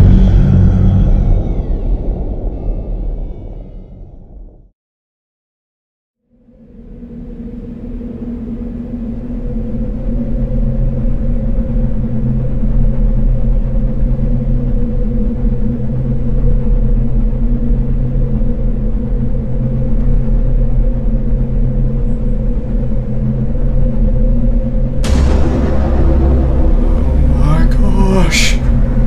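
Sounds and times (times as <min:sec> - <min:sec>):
deep rumbling hum: 0:00.0 - 0:04.7, 0:06.4 - 0:29.0.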